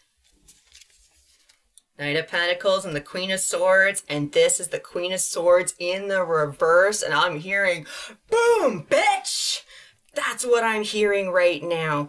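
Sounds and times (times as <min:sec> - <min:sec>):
cards rustling: 0:00.0 - 0:01.8.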